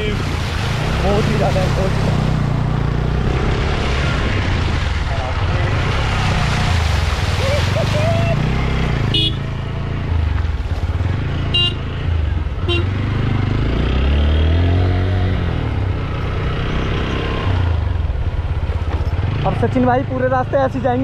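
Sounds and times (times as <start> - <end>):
water splashing from wheel: 0.0 - 9.5, 10.1 - 12.6
horn toots: 9.1 - 9.5, 11.5 - 11.9, 12.6 - 13.0.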